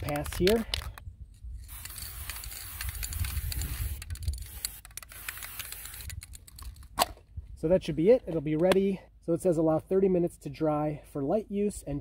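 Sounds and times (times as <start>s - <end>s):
aerosol spray can hissing: 1.6s - 6.1s.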